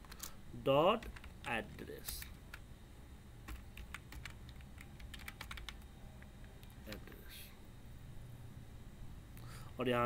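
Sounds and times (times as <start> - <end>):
keyboard typing: 0.9 - 2.6, 3.4 - 7.1.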